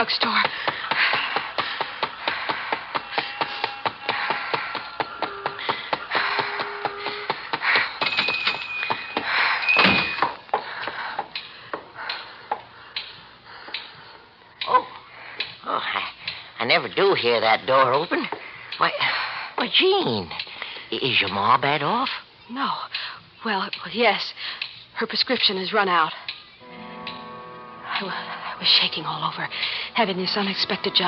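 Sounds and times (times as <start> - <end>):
running footsteps: 0.4 - 12.7
high ringing ping: 8.0 - 10.4
music cue: 26.6 - 31.0.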